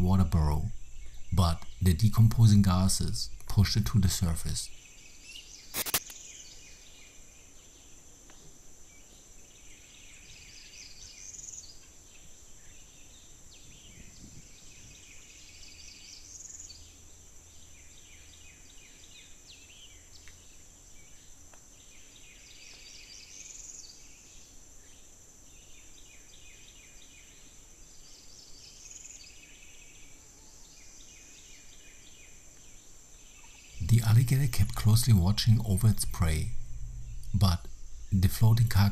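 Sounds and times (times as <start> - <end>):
chirping calls: 0.0 - 6.8, 31.2 - 38.9.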